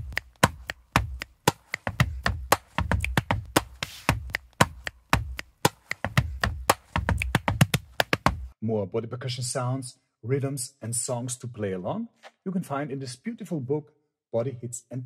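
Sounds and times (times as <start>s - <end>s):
finger snaps: 0.0s - 3.3s
hand claps: 0.0s - 8.5s.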